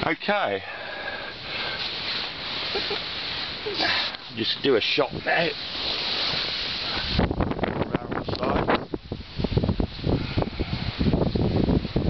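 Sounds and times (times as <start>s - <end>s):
wind rushing and rustling: 1.0s - 12.0s.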